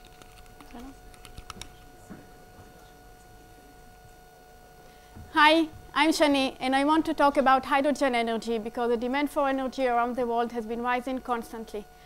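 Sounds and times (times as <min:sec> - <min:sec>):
sound system electrical hum: 0:00.0 - 0:12.0.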